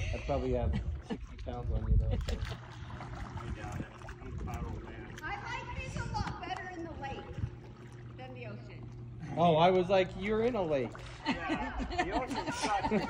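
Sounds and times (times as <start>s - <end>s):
low steady hum: 0.0s - 13.0s
distant voices: 2.3s - 13.0s.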